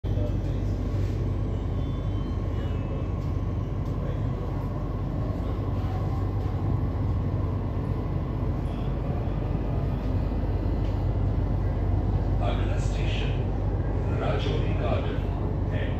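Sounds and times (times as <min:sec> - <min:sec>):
train carriage rumble: 0:00.0 - 0:15.9.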